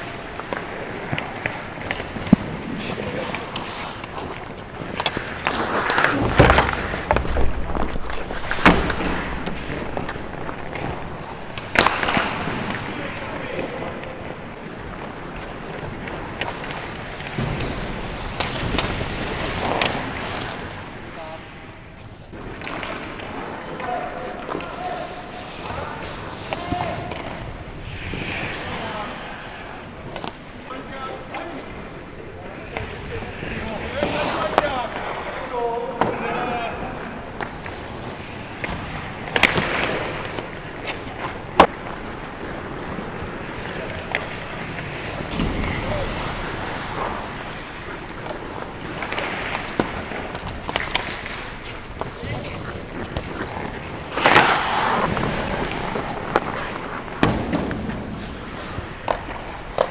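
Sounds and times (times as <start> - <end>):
hockey sticks clacking: 0.0 - 59.9
skates scraping ice: 0.0 - 59.9.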